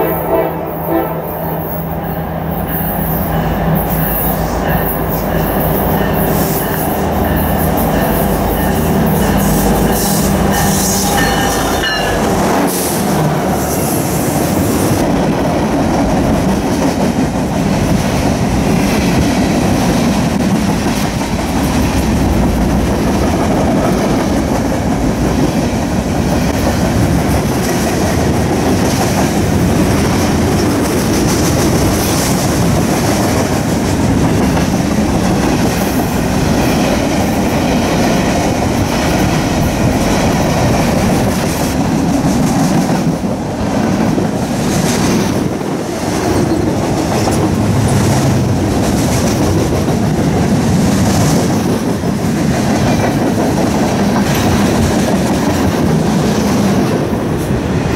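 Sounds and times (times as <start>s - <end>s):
diesel locomotive engines passing: 0.0s - 57.9s
freight cars rumbling on rails: 0.0s - 57.9s.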